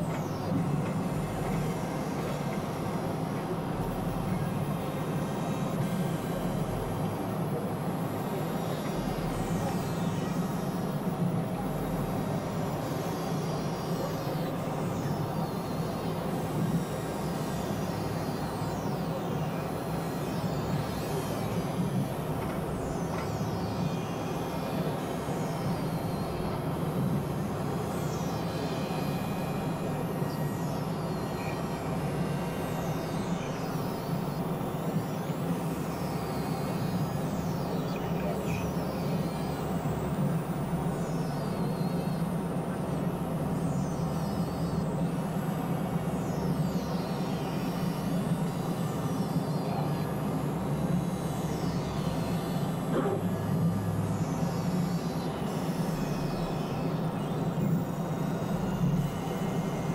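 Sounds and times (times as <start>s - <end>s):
low synthesizer drone: 0.0s - 59.9s.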